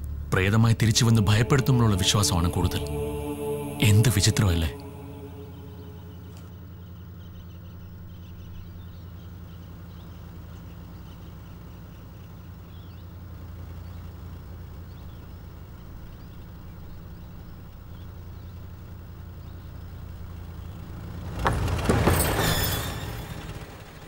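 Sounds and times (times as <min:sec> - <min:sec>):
vehicle engine droning: 0:00.0 - 0:24.0.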